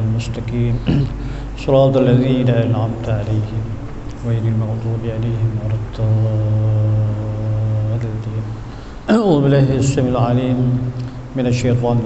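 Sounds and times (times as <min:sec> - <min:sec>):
man reciting a long low note: 0:00.0 - 0:12.0.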